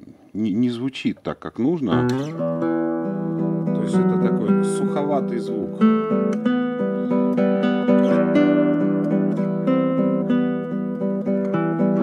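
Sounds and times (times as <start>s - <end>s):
fingerpicked classical guitar: 1.8s - 12.0s.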